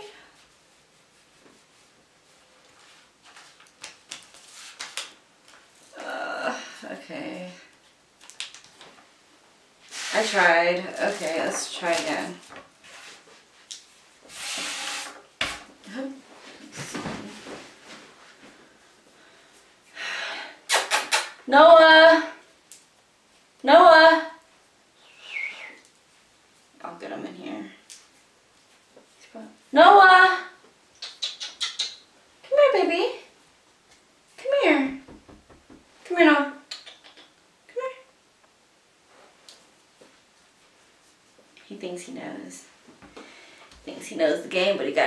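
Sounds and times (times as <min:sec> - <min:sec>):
woman calling a cat: 0:37.7 - 0:38.1.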